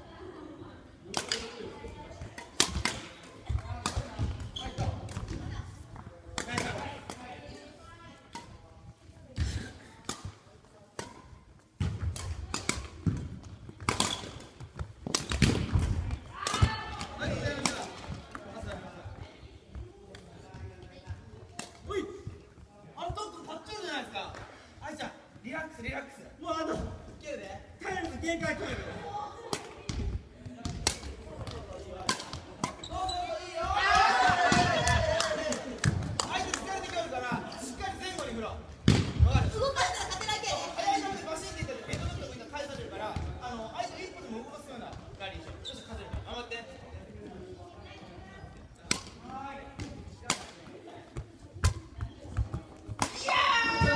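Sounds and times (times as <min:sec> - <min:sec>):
racket hitting shuttlecock: 0:02.3 - 0:05.4, 0:10.0 - 0:18.1, 0:30.6 - 0:32.9
racket striking shuttlecock: 0:13.8 - 0:14.5.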